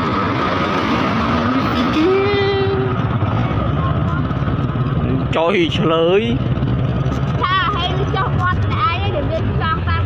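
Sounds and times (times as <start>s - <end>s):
road noise: 0.0s - 10.0s
motorbike engine running: 1.4s - 10.0s.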